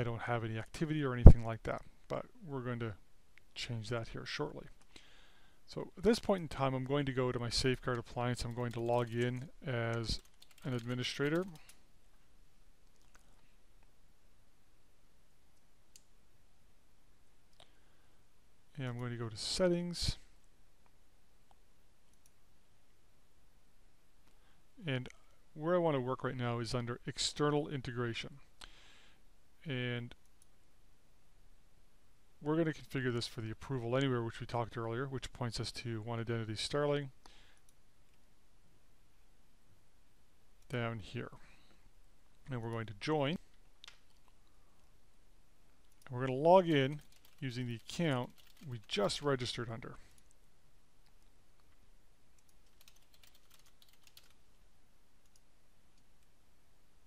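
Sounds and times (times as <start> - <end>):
computer keyboard typing: 7.8 - 11.8, 46.0 - 49.3, 52.4 - 54.5.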